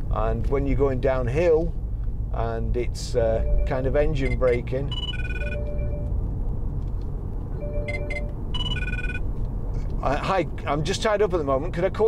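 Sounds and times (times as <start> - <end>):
car cabin road noise: 0.0 - 12.0
phone ringtone: 3.4 - 6.1, 7.6 - 9.2.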